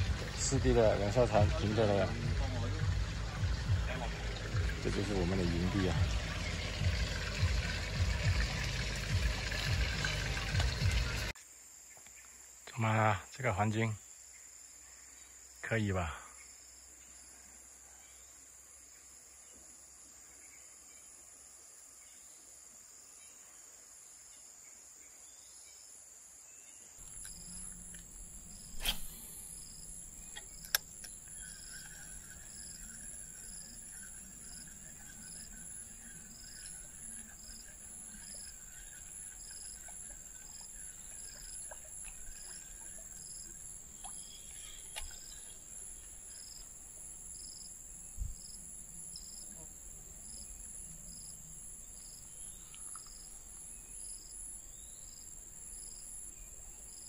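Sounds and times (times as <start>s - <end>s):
insects shrilling: 27.0s - 57.0s.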